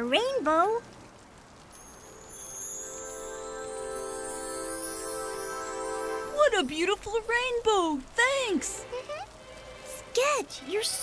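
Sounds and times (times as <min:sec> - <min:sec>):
soft rain-like hiss: 0:00.0 - 0:11.0
shimmering tones and musical chord: 0:01.8 - 0:06.5.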